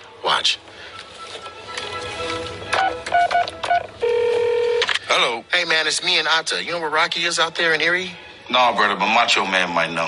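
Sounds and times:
keypad beeps: 2.8 - 4.8
telephone ringing tone: 2.8 - 4.9.

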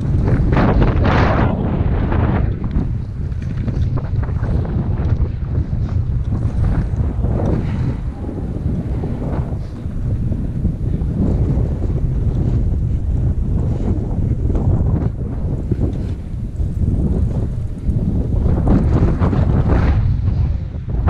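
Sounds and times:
skis scraping on snow: 0.0 - 20.8
wind buffeting microphone: 0.0 - 21.0.

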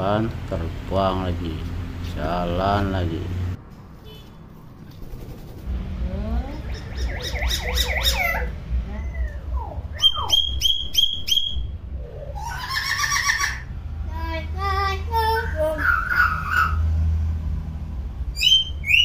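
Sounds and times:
throaty voice-like bird calls: 6.4 - 13.7, 15.3 - 16.9, 18.4 - 19.0
myna whistling calls: 6.5 - 13.5, 18.4 - 19.0.

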